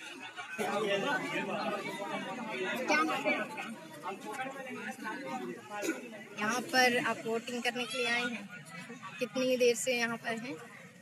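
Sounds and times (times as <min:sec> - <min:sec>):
indistinct chatter of voices: 0:00.0 - 0:11.0.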